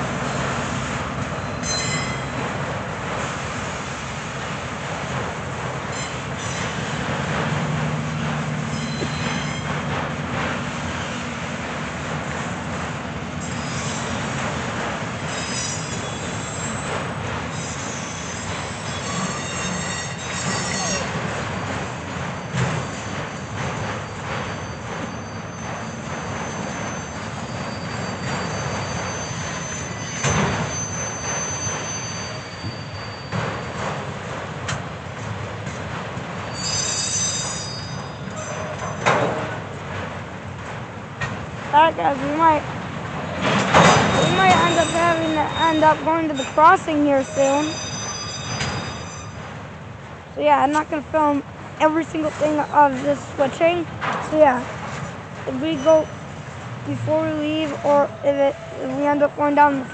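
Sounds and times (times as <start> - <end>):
steel wheels rumbling on rail: 0.0 - 59.9
high wheel squeal: 1.3 - 2.4, 5.9 - 7.1, 8.5 - 10.0, 13.4 - 14.4, 15.2 - 21.3, 22.3 - 33.8, 36.4 - 39.4, 43.7 - 49.5, 55.5 - 56.4, 57.0 - 59.9
freight car clanks: 37.3 - 47.8.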